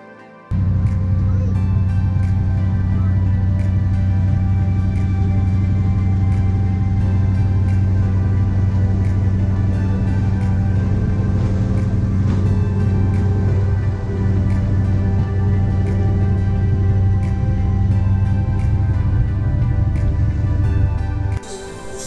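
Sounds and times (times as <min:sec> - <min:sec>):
background music: 0:00.0 - 0:22.0
ferry engine droning: 0:00.5 - 0:22.0.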